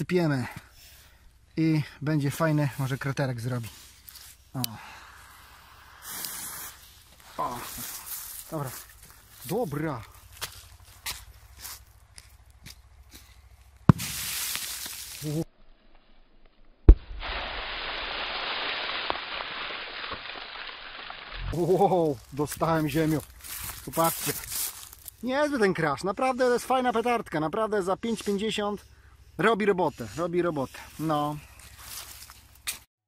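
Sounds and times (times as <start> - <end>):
firecracker fuse hissing: 3.9 - 8.6, 13.9 - 15.4
soil raining down pattering: 4.0 - 12.8, 13.8 - 15.5, 16.9 - 25.2.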